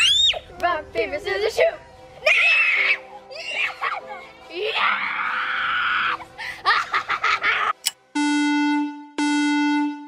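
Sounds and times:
electronic buzzer beeps: 0:08.2 - 0:10.0.

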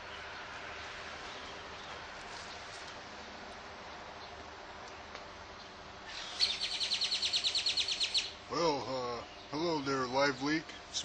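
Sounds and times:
bird trilling: 0:06.1 - 0:08.6.

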